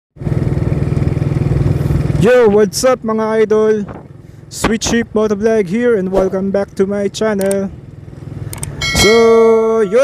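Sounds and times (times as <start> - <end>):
motorcycle engine running: 0.2 - 10.0.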